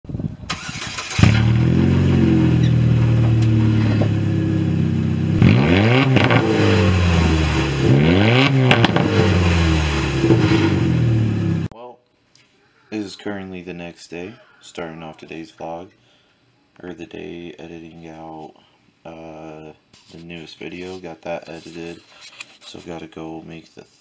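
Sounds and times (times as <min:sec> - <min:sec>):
car engine revving: 0:00.6 - 0:11.7.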